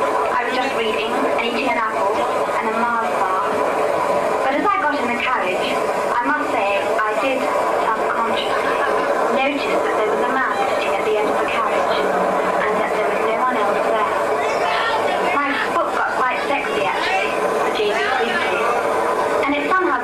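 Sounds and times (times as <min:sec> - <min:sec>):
train-like rumble: 0:00.0 - 0:20.0
voices over a pa: 0:12.7 - 0:18.8.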